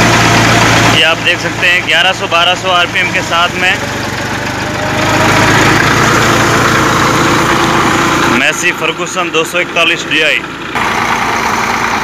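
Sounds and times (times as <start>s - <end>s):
diesel tractor engine running: 0.0s - 12.0s
thresher running: 0.0s - 12.0s.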